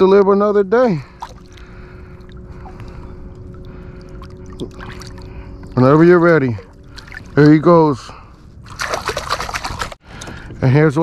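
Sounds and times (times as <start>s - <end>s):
water sloshing and splashing: 1.0s - 10.5s.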